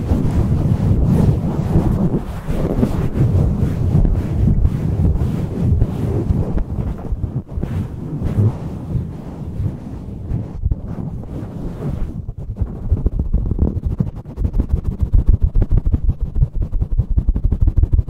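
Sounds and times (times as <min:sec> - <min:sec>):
fingers scratching microphone windscreen: 0:00.0 - 0:18.0.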